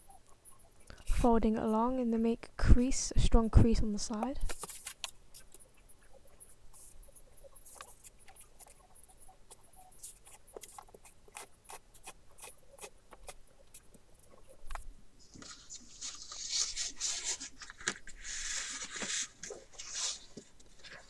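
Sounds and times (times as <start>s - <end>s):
card crackling and tapping: 4.1s - 5.7s, 7.6s - 8.8s
papery rubbing: 4.5s - 14.6s, 15.2s - 21.0s.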